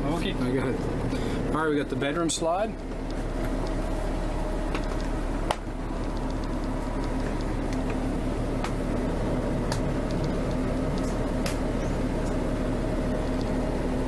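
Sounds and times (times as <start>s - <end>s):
light ticks: 4.7s - 8.0s, 9.7s - 12.4s.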